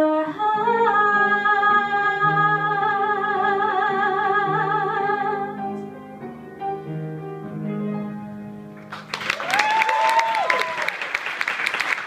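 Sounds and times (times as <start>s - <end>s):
soft instrumental accompaniment: 0.0s - 9.3s.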